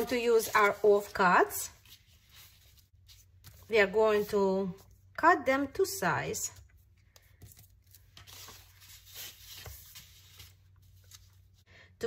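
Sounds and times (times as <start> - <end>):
paper rustling and sliding: 0.0 - 4.4, 7.3 - 11.6.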